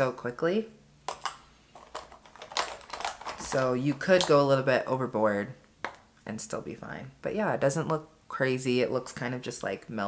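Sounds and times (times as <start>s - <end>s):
plastic makeup cases clicking: 1.1s - 4.4s, 5.8s - 6.1s.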